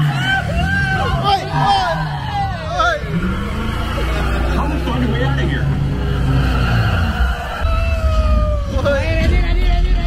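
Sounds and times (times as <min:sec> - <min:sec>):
voices: 0:00.0 - 0:10.0
deep rumble of sound effects: 0:02.6 - 0:10.0.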